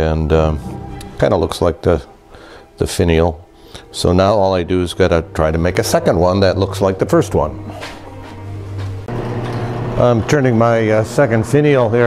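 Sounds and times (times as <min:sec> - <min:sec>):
wood lathe motor running: 0:09.1 - 0:12.0.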